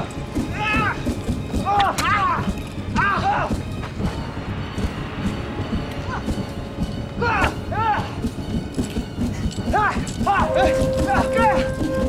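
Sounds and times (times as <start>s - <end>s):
fighters shouting: 0.0s - 3.7s, 7.2s - 8.2s, 9.7s - 12.0s.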